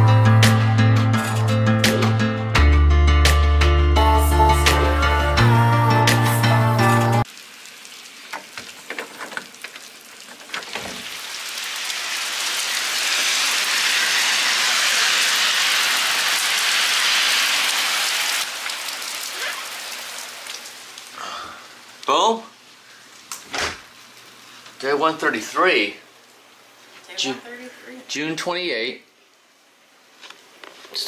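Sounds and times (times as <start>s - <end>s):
rain falling on pavement: 15.9s - 21.2s.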